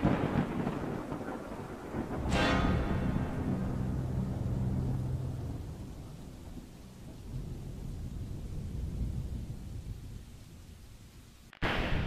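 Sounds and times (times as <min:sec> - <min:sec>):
deep thunder-like rumble: 0:00.0 - 0:11.2.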